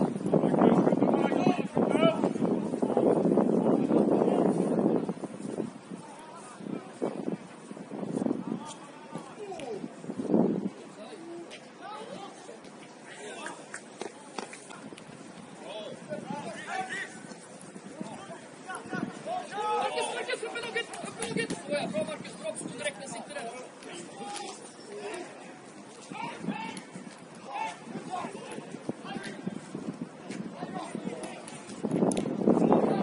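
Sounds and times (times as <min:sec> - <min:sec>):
distant players calling: 0:10.9 - 0:31.8.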